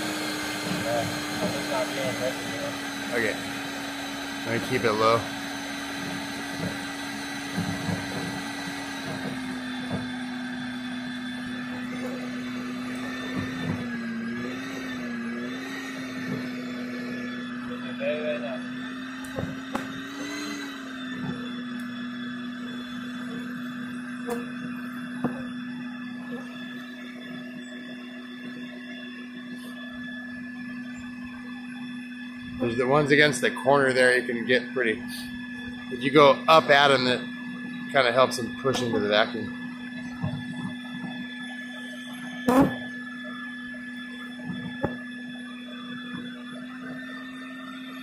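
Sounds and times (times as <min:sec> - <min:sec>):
vacuum whining: 0:00.0 - 0:48.0.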